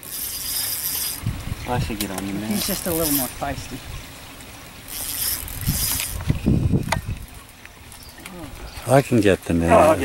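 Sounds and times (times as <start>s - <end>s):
fishing reel whirring: 0.0s - 1.9s, 2.5s - 3.8s, 4.7s - 7.5s.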